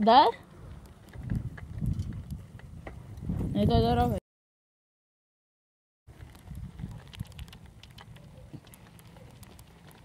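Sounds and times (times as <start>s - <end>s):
wind buffeting microphone: 0.4s - 4.2s, 6.1s - 7.9s.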